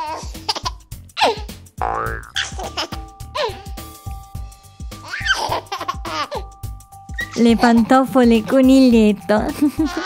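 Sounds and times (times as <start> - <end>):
playful children's music: 0.0 - 10.0
cartoon boing sound effects: 1.8 - 2.4.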